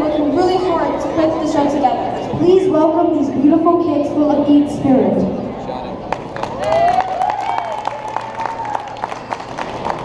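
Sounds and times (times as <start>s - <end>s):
scattered clapping: 6.1s - 10.0s.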